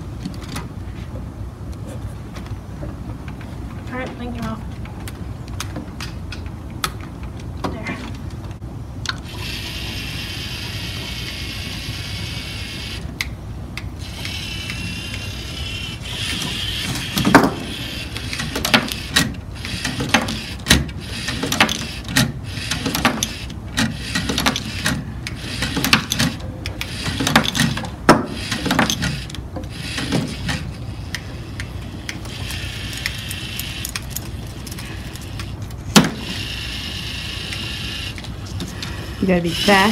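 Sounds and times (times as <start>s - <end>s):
robot motors whirring: 14.0s - 30.7s.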